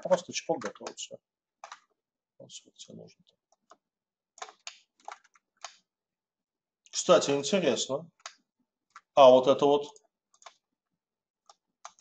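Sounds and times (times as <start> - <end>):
mouse and keyboard clicks: 1.6 - 1.9, 10.3 - 10.6, 11.4 - 12.0.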